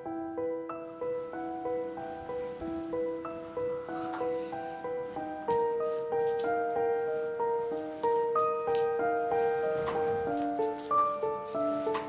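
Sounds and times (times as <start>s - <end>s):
light keyboard tune: 0.0s - 12.0s.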